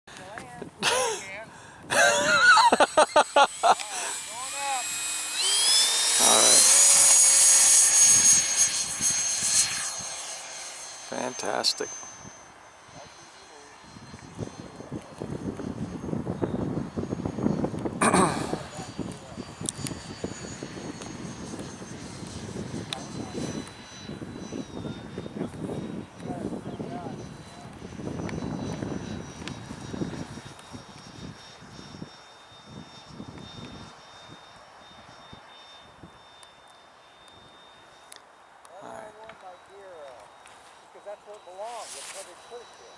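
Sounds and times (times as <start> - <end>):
electric ducted fan whine: 0.1 - 42.9
model jet rushing overhead: 0.1 - 42.9.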